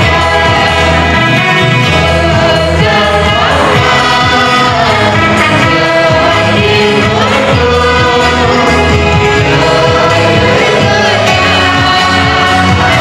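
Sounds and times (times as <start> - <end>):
group singing a gospel hymn: 0.0 - 13.0
instrumental backing with bass line: 0.0 - 13.0.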